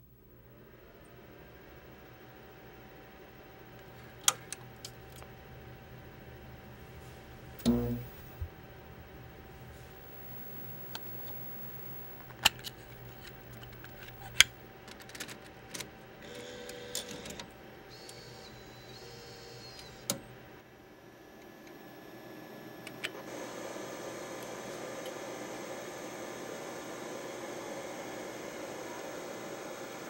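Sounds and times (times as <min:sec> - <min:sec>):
tape playback hiss: 0:00.0 - 0:30.0
tape transport motor whirring: 0:03.6 - 0:20.6
small mechanical clicks: 0:12.3 - 0:20.2.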